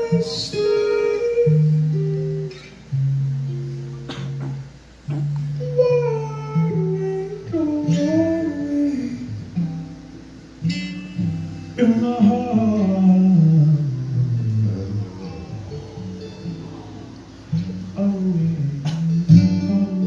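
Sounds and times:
man singing: 0:00.0 - 0:02.5, 0:05.6 - 0:09.5, 0:11.8 - 0:20.0
acoustic guitar ringing notes: 0:00.0 - 0:20.0.

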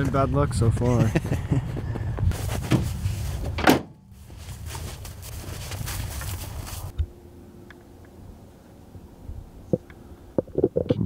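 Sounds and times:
rustling handling noise: 0:02.3 - 0:07.0.

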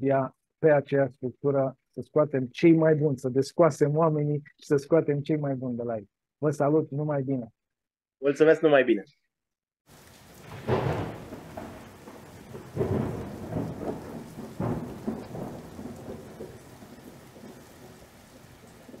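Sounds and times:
steady rain: 0:09.9 - 0:19.0
thunder rolling: 0:09.9 - 0:19.0.

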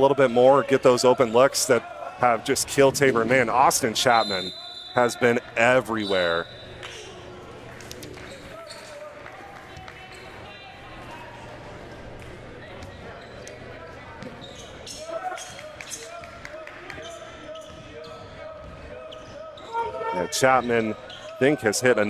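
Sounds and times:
echoing voices in hall: 0:00.0 - 0:22.0.

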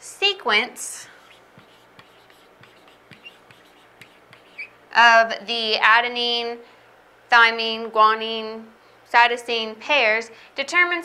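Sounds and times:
marker scratching on whiteboard: 0:01.1 - 0:04.8
marker squeaks: 0:01.1 - 0:04.8.

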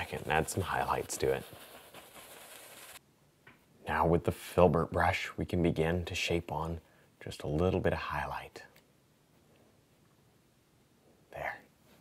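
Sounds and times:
bristle brush scrubbing canvas: 0:00.0 - 0:03.0.

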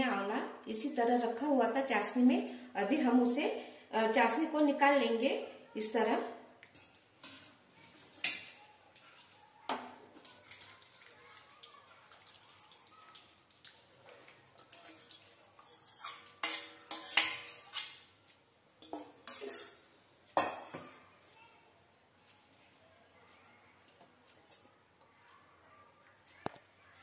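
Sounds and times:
metal cookware knocking and clinking: 0:16.4 - 0:18.0, 0:18.8 - 0:19.8, 0:20.4 - 0:21.0.

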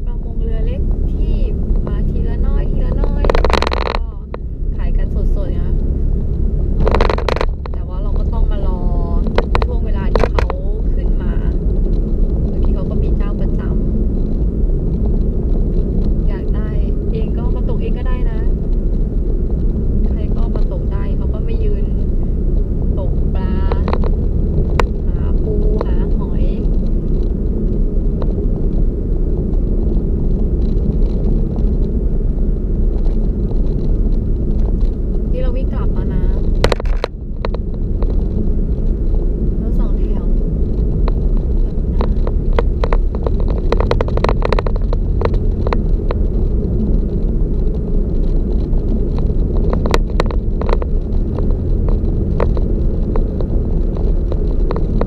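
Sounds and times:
car road and engine rumble: 0:00.0 - 0:55.0.

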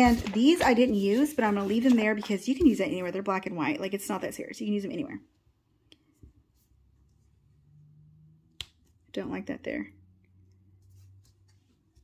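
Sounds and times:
paper stickers handled: 0:00.0 - 0:03.2.

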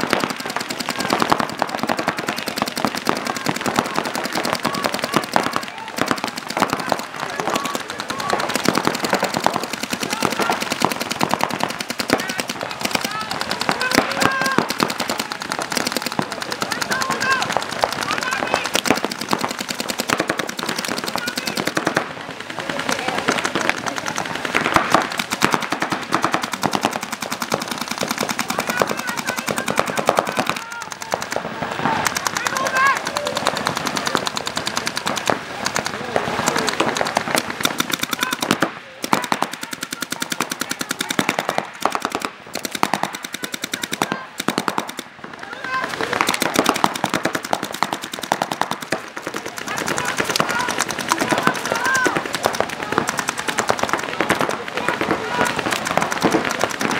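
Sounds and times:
paintball markers firing: 0:00.0 - 0:56.9.

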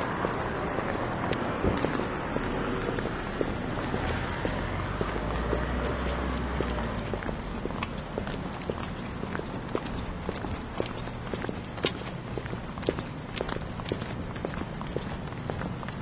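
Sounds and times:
footsteps on pavement: 0:00.0 - 0:16.0.

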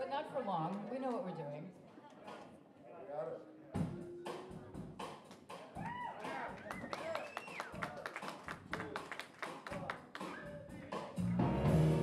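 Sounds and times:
voices in a hall: 0:00.0 - 0:11.3
people clapping: 0:05.2 - 0:11.1.

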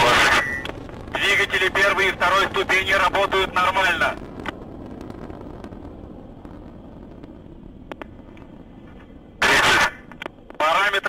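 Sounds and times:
faint crackles: 0:00.0 - 0:11.0
rocket engines rumbling: 0:00.0 - 0:11.0.

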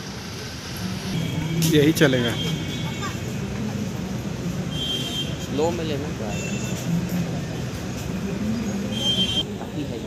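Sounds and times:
people's voices: 0:00.6 - 0:10.0.

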